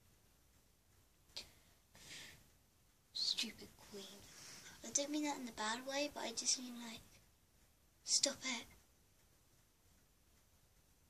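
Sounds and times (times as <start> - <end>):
soft hiss: 0.0 - 11.0
girl whispering: 3.2 - 7.0, 8.1 - 8.8.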